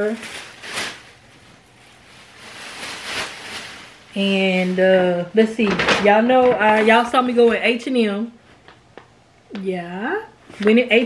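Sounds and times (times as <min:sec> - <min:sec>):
clothing rustling: 0:00.0 - 0:04.9.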